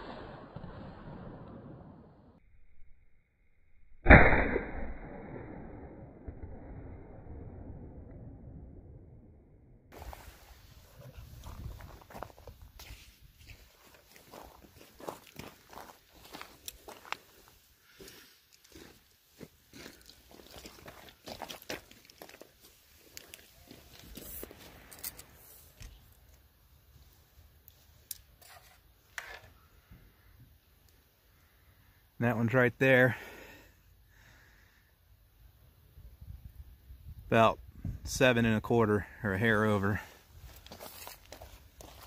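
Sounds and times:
footsteps crunching on gravel: 0:11.2 - 0:24.8, 0:40.4 - 0:42.0.

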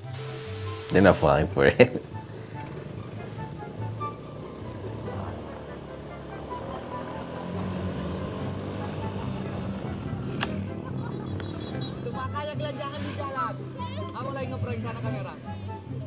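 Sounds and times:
background music: 0:00.0 - 0:16.0
motor scooter engines passing: 0:00.0 - 0:16.0.

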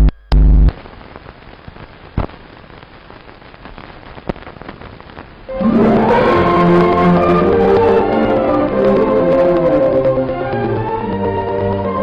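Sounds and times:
film soundtrack crackling hiss: 0:00.0 - 0:12.0
sharp pops: 0:01.7 - 0:05.3.

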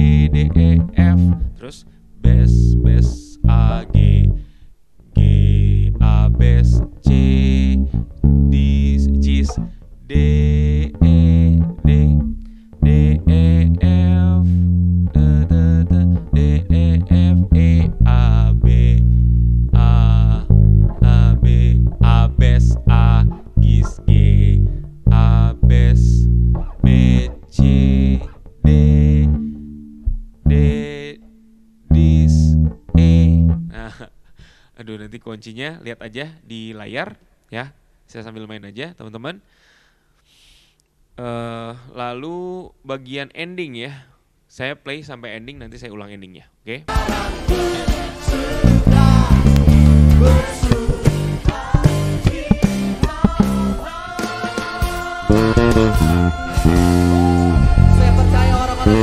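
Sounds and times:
electric bass plucked notes: 0:00.0 - 0:34.2, 0:48.3 - 0:53.9, 0:54.8 - 0:59.0.

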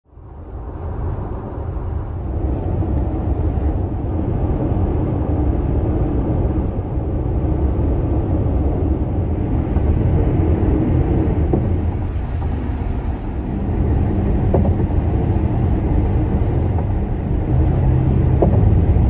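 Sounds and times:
car driving on highway: 0:00.1 - 0:19.0.

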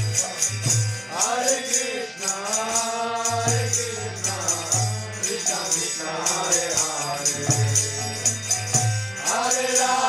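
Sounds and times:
hand cymbals striking: 0:00.0 - 0:10.0
person singing a chant: 0:00.0 - 0:10.0.

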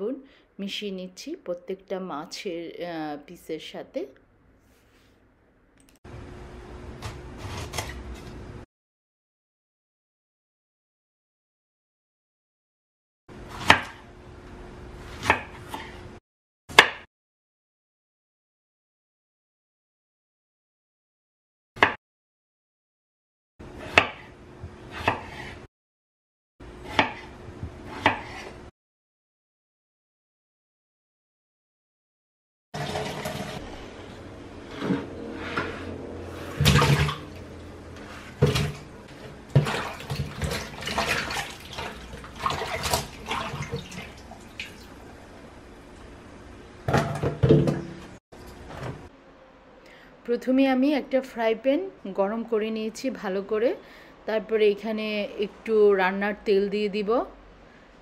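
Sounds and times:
knife chopping on wooden board: 0:13.5 - 0:14.0, 0:15.2 - 0:16.0, 0:16.7 - 0:17.1, 0:23.7 - 0:25.6, 0:26.8 - 0:28.6
water splashing and sloshing in bowl: 0:36.4 - 0:45.2.

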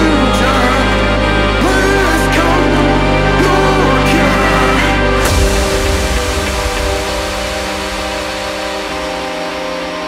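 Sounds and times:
heavy bass: 0:00.0 - 0:10.0
held synth chords: 0:00.0 - 0:10.0
electronic dance music: 0:04.6 - 0:10.0.

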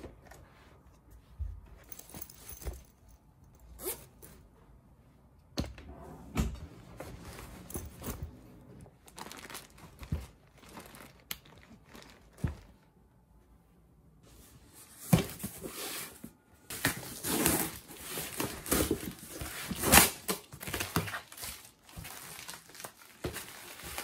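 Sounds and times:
rustling and crinkling of plastic: 0:07.0 - 0:13.0, 0:14.8 - 0:24.0.

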